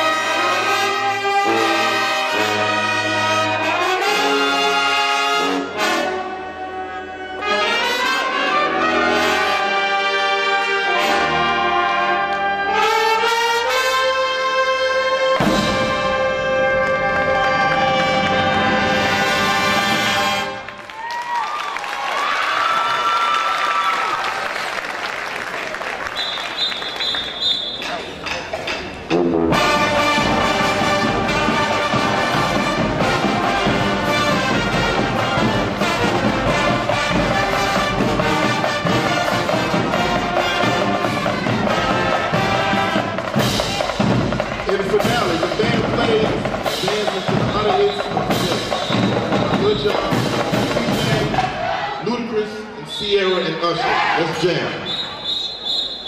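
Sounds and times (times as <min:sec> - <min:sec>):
marching band playing: 0:00.0 - 0:21.1, 0:25.4 - 0:52.3.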